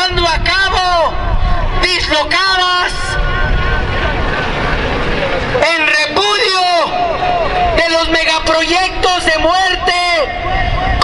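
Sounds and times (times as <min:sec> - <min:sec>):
city street rumble: 0:00.0 - 0:11.0.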